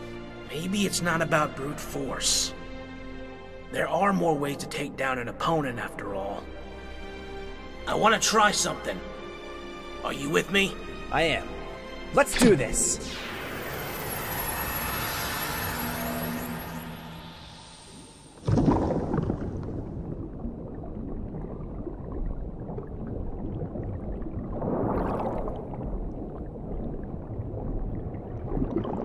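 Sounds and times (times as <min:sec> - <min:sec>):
shimmering ringing effect: 0:13.0 - 0:18.4
low underwater rumble: 0:16.0 - 0:29.0
bubbling: 0:18.4 - 0:29.0.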